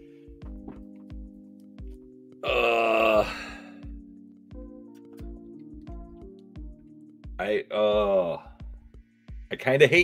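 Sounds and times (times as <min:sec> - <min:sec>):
background music with low beat: 0:00.0 - 0:10.0
man groaning: 0:02.4 - 0:03.8, 0:07.7 - 0:08.4.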